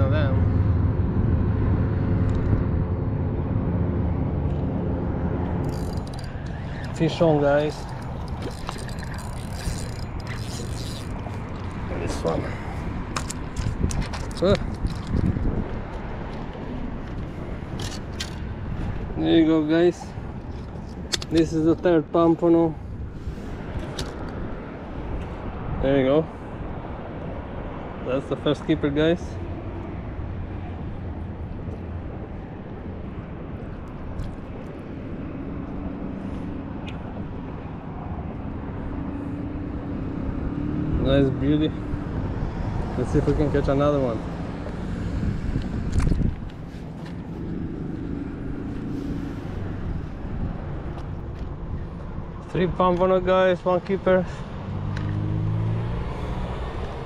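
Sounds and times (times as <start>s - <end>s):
motor engine low hum: 0.0s - 19.2s
low outdoor rumble: 0.0s - 54.3s
wind buffeting microphone: 0.0s - 57.0s.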